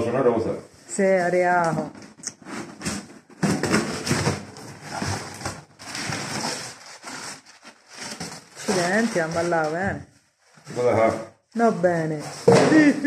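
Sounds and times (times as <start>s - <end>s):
paper and cardboard rustling: 1.0s - 13.0s.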